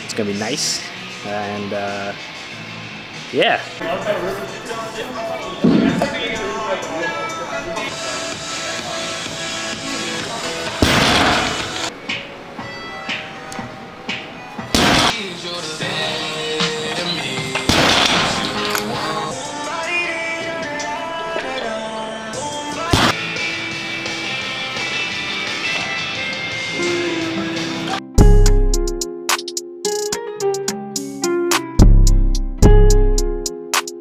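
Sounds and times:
sharp loud impacts: 10.8s - 11.9s, 14.8s - 15.2s, 17.7s - 18.7s.

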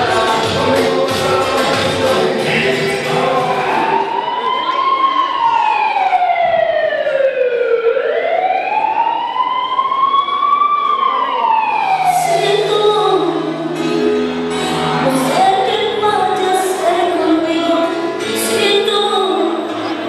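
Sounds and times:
dance music: 0.0s - 7.1s, 8.8s - 20.0s
wailing siren sound effect: 3.2s - 13.6s.

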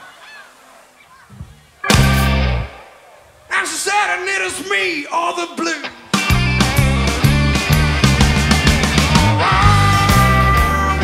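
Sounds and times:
band playing loud chord: 1.8s - 2.9s, 6.2s - 11.0s
cymbal crash: 1.9s - 2.8s.

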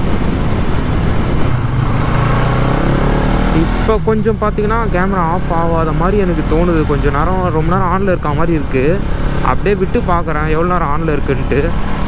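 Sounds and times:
road and wind noise: 0.0s - 12.0s.

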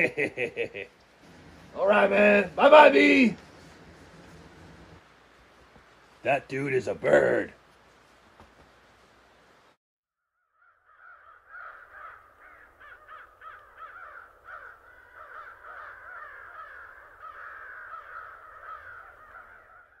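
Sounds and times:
birds chattering: 10.9s - 20.0s.

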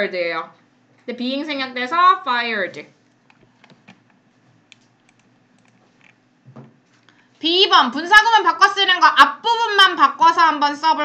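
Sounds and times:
computer keyboard clicks: 3.2s - 6.2s.

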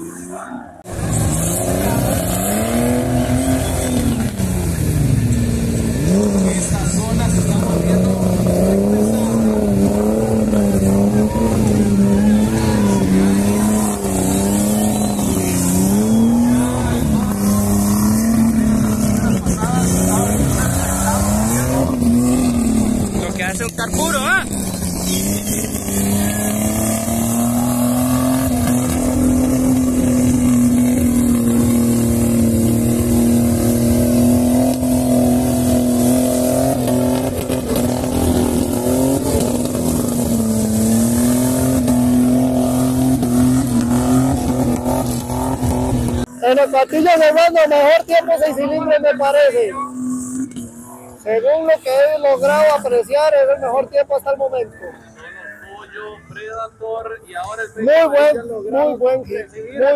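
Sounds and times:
off-road engine revving: 0.0s - 55.0s.

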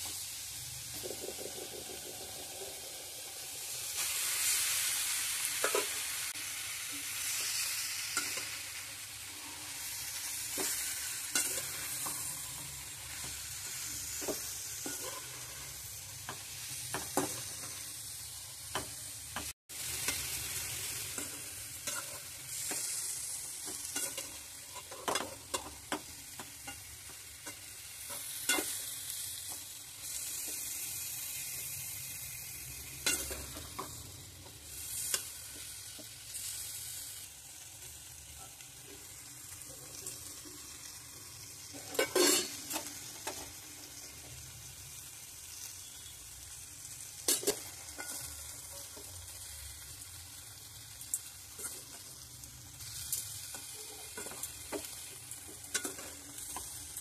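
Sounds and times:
food sizzling in a metal pan: 0.0s - 57.0s
spoon scraping a pan: 7.4s - 17.9s, 20.0s - 30.7s, 33.0s - 34.1s, 41.7s - 43.6s, 47.2s - 49.1s, 53.5s - 56.8s.

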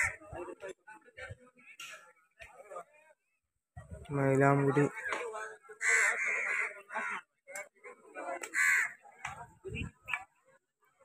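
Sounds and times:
scattered voices: 0.0s - 11.0s.

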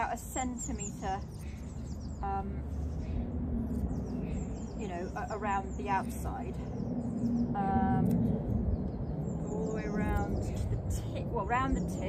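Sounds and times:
woman speaking: 0.0s - 1.4s, 2.2s - 2.7s, 4.8s - 6.7s, 7.6s - 8.2s, 9.4s - 12.0s
small birds chirping: 0.0s - 12.0s
wind rumble on microphone: 0.0s - 12.0s.

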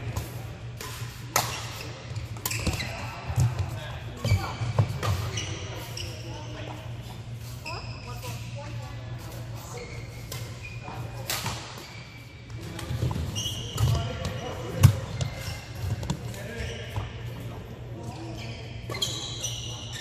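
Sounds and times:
low hall hum: 0.0s - 20.0s
shoes squeaking on court: 0.1s - 20.0s.

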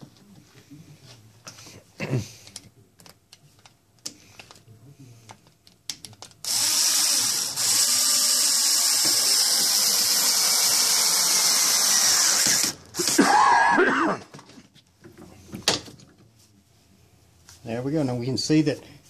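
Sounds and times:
electric drill running: 6.4s - 13.2s.

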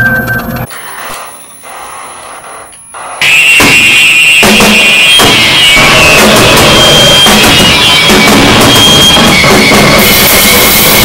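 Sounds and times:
distorted noise wall: 0.0s - 11.0s
thin high whine: 0.0s - 11.0s.

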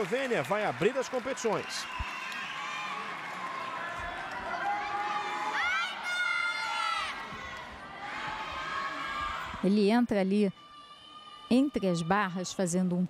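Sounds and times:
crowd cheering: 0.0s - 9.7s.

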